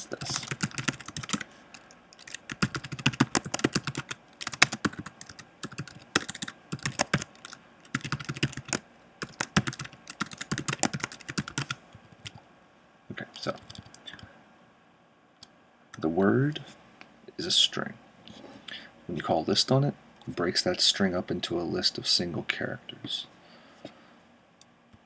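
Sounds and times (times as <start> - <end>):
typing on computer keyboard: 0.2 - 12.4, 13.5 - 14.0.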